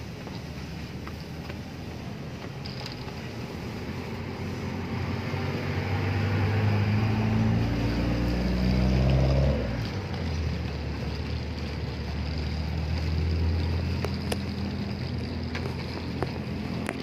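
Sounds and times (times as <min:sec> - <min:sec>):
vehicle engine running: 0:00.0 - 0:17.0.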